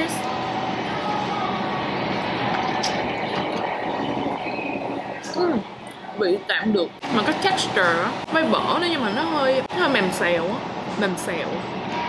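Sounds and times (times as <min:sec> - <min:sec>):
loud background noise: 0:00.0 - 0:12.0.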